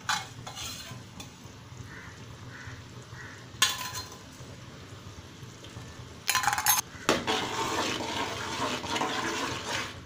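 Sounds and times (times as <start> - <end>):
metal spoon stirring liquid in pot: 0.0 - 1.3, 6.4 - 10.0.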